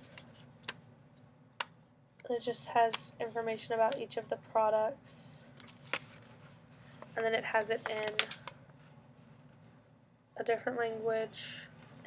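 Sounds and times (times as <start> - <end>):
paper rustling: 5.6 - 8.6.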